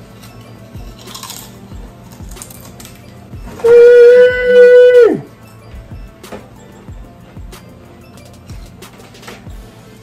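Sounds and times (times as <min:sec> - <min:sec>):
background music with steady beat: 0:00.0 - 0:10.0
loud steady horn-like tone: 0:03.5 - 0:05.3.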